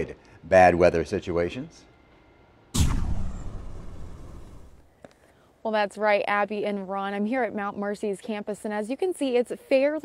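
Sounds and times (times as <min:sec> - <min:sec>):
low swoosh: 0:02.8 - 0:04.9
sudden hit: 0:02.8 - 0:04.9.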